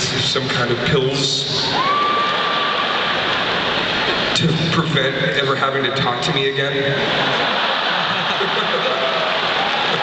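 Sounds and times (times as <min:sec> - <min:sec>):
audience applauding: 0:01.8 - 0:04.4, 0:07.2 - 0:10.0
audience laughing: 0:02.5 - 0:04.4, 0:06.9 - 0:10.0.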